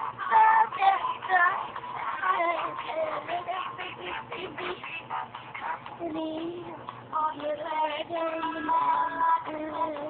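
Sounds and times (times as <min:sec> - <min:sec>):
girl singing pop song: 0:00.0 - 0:10.0.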